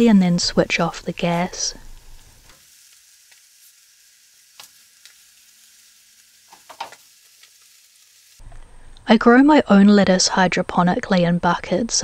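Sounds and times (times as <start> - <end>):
cheese sizzling in a frying pan: 0.0 - 8.6.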